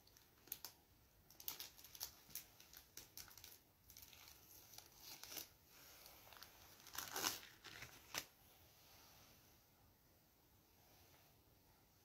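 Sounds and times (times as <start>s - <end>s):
plastic wrapper crinkling: 0.0s - 8.3s.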